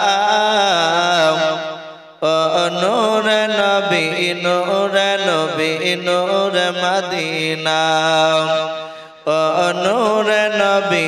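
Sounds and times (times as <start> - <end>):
man chanting into a microphone: 0.0 - 11.0
breath catch: 8.8 - 9.2.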